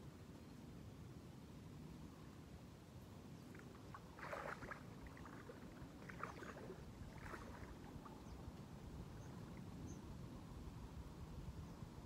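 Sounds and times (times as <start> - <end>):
person wading in shallow water: 3.5 - 9.8.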